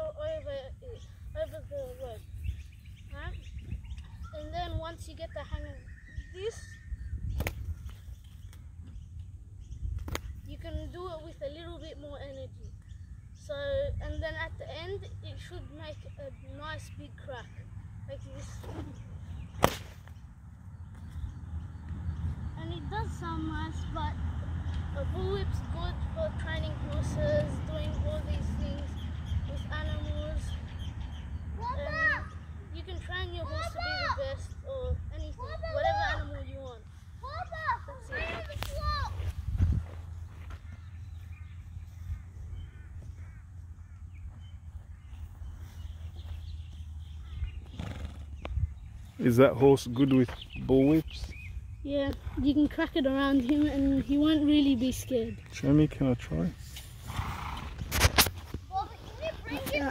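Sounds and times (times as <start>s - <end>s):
wind rumbling on microphone: 0.0s - 15.0s, 37.9s - 49.2s
bullwhip crack: 19.5s - 20.2s
distant animal calls: 40.5s - 45.9s.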